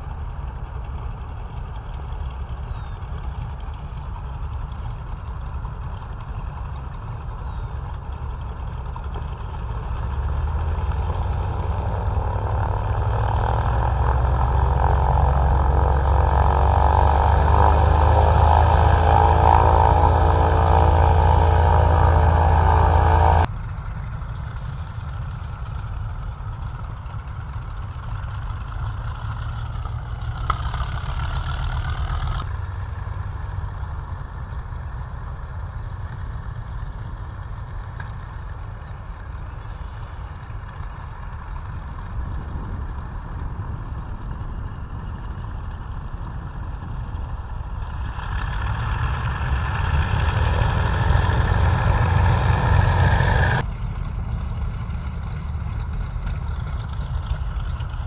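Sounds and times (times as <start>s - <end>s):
aircraft radial engines running: 0.0s - 58.0s.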